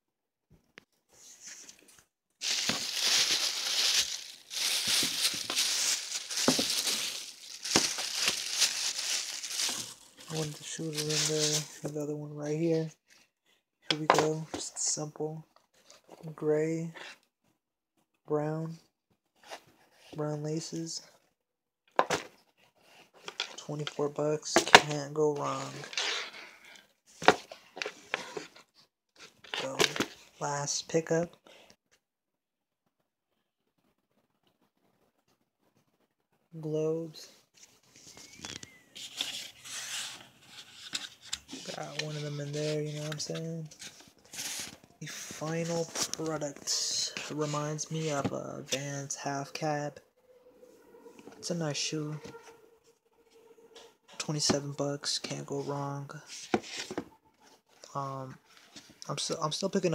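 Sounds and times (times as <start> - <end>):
tissue paper crinkling: 2.4 - 11.9, 37.8 - 48.1.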